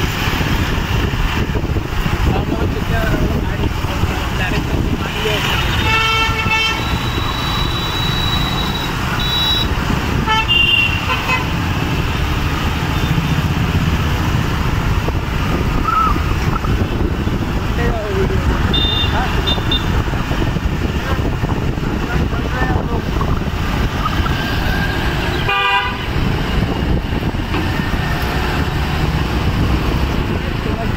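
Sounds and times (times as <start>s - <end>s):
busy street traffic: 0.0s - 30.9s
vehicle horn beeping: 5.6s - 11.5s, 18.7s - 20.0s, 25.3s - 26.1s.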